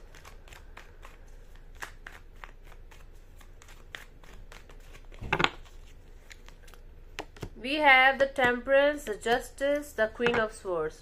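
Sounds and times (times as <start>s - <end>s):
cards being shuffled: 0.0s - 7.5s.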